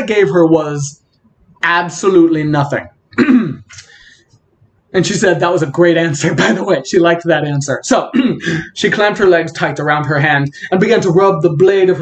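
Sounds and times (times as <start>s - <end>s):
man clearing his throat: 3.2s - 3.8s, 8.1s - 8.6s.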